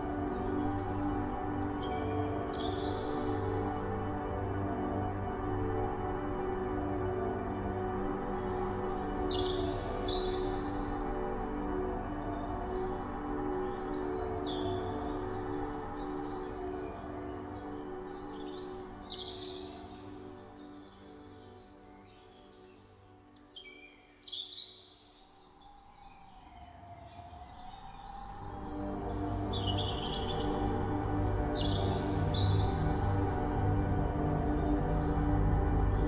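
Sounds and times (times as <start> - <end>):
calm ambient music: 0.0 - 36.0.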